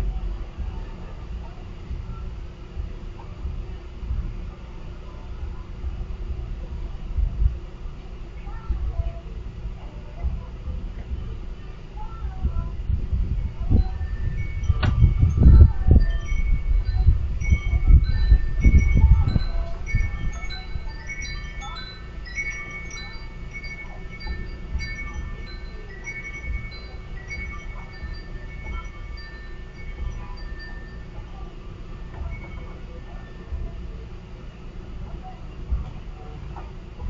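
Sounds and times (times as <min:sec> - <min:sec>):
uneven low rumble: 0:00.0 - 0:37.0
chimes ringing: 0:13.4 - 0:34.0.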